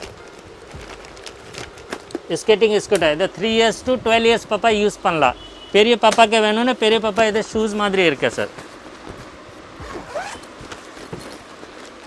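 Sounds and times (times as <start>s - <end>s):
plastic bag rustling: 0.0s - 2.4s
zipper pulled open: 9.8s - 10.6s.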